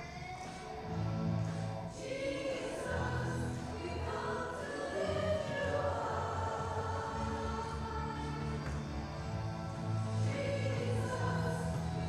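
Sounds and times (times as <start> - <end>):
group singing worship song: 0.1 - 12.0.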